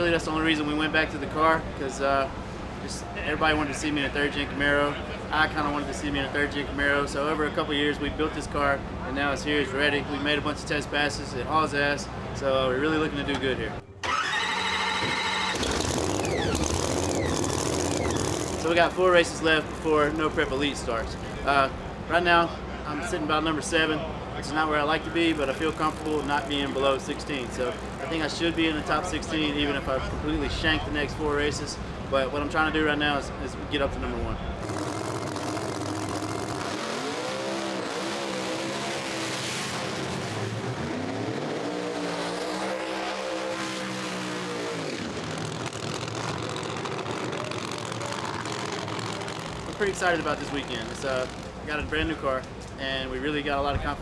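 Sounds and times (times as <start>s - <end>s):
starter whine: 14.0s - 18.9s, 34.6s - 36.8s, 44.8s - 52.2s
engine running rough: 14.0s - 22.8s, 25.0s - 29.2s, 34.5s - 52.8s.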